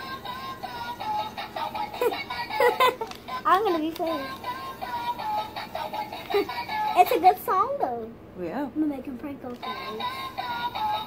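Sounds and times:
toy playing electronic song: 0.0 - 7.0, 9.6 - 11.0.

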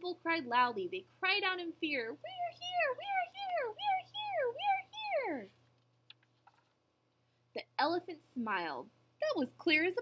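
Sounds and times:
high-pitched squeaky voice calling: 2.3 - 5.5.

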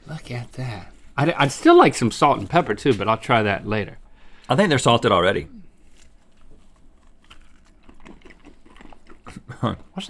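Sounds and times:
crunchy chewing: 5.7 - 10.0.

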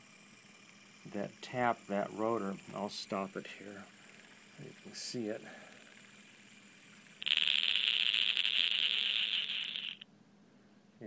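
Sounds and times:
electrostatic motor brushes rattling: 0.0 - 10.0.

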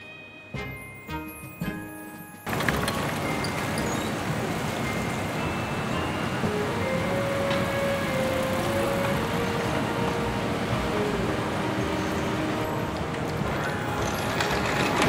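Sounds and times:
faint music: 0.0 - 15.0
traffic and street noise: 1.8 - 15.0.

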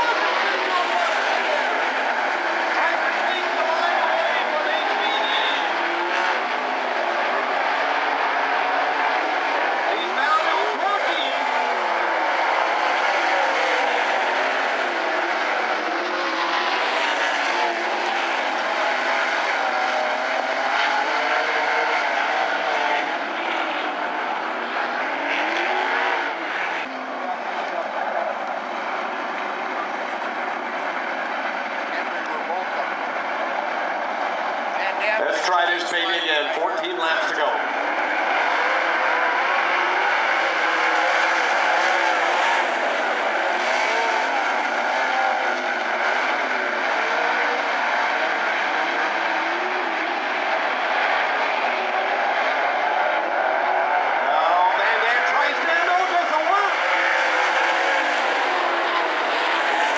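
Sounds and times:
race car engines running: 0.0 - 59.9.

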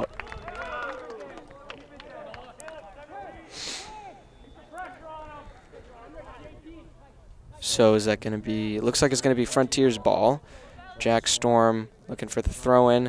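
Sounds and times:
brief hiss: 3.5 - 4.0.

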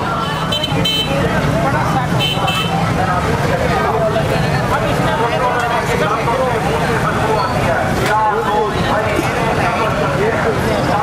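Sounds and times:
motorcycle and traffic engines: 0.0 - 11.0
vehicle horn tooting: 0.2 - 1.2, 2.2 - 2.8.

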